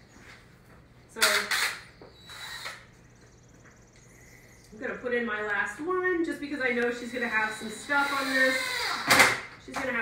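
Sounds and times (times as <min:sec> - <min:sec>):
cordless drill bursts: 0:01.4 - 0:02.9, 0:07.1 - 0:09.3.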